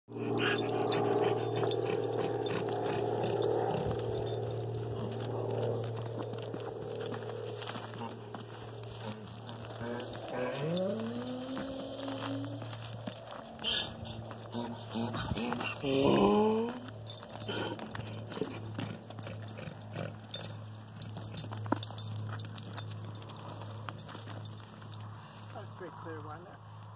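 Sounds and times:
hooves on dry dirt: 0:00.1 - 0:26.9
steady low hum: 0:00.1 - 0:26.9
rising tone: 0:09.1 - 0:12.8.

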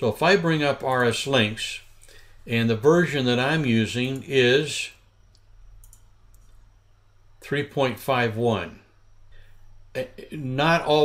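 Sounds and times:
low steady hum: 0:00.0 - 0:11.0
computer mouse clicks: 0:05.3 - 0:06.6.

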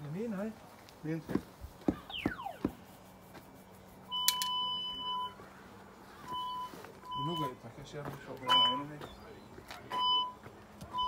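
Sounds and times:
cable locator beep: 0:02.1 - 0:02.8, 0:04.1 - 0:05.4, 0:06.3 - 0:07.4, 0:08.5 - 0:08.9
falling whistle-like sweep: 0:02.1 - 0:02.8.

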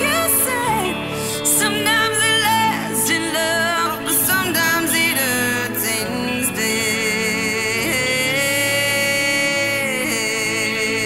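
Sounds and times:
woman singing a long note: 0:00.0 - 0:11.0.

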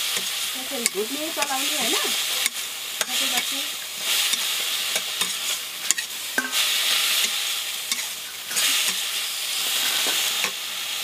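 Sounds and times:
metal spoon scraping pan: 0:00.0 - 0:10.6
food sizzling in a wok: 0:00.0 - 0:11.0.

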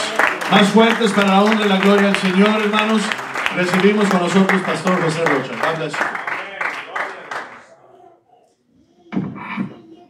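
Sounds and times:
applause: 0:00.0 - 0:07.7.

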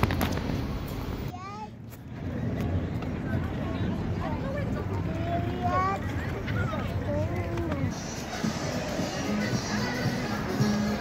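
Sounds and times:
low street rumble: 0:00.0 - 0:11.0.

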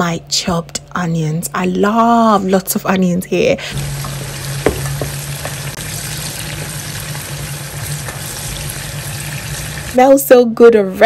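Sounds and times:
onions sizzling in oil: 0:03.8 - 0:10.3.

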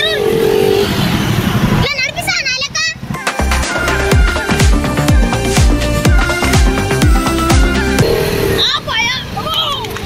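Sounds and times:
motorcycles rumbling: 0:00.0 - 0:10.0
street traffic: 0:00.0 - 0:10.0.

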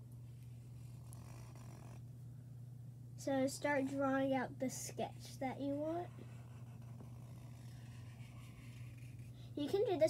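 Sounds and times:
steady low hum: 0:00.0 - 0:10.0
marker scratching on paper: 0:00.8 - 0:02.0, 0:05.7 - 0:09.3.

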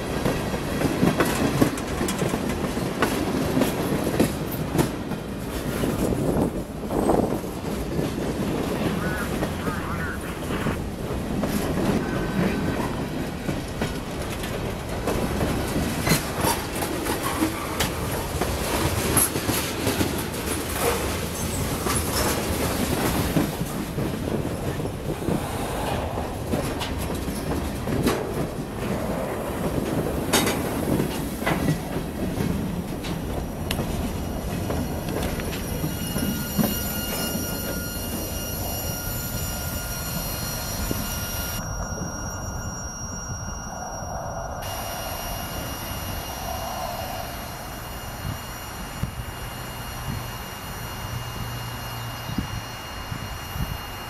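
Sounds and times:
wheels clicking and clacking: 0:00.0 - 0:43.1
train wheels rumbling on rail: 0:00.0 - 0:54.0
steel wheel squeal: 0:34.0 - 0:54.0.

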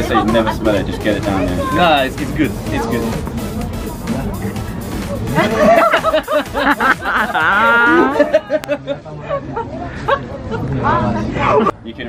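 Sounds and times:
bursts of laughter: 0:05.1 - 0:10.6.

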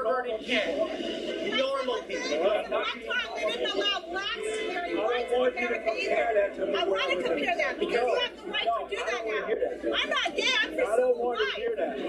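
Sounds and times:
people talking over television speaker: 0:00.0 - 0:12.0.

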